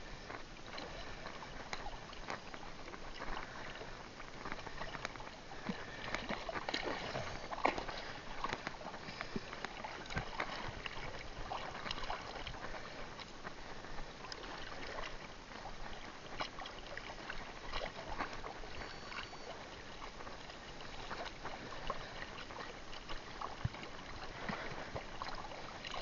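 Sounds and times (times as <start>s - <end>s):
seawater sloshing and splashing: 0.0s - 26.0s.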